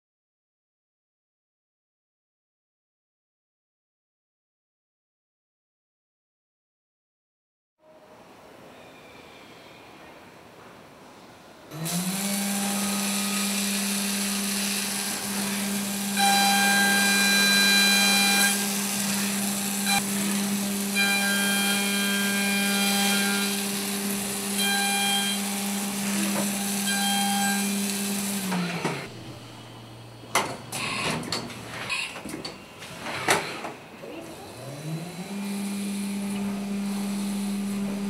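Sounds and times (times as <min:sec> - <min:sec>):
end mill cutting metal whine: 0:11.8 - 0:31.4, 0:34.5 - 0:38.0
mill spindle humming: 0:34.7 - 0:38.0.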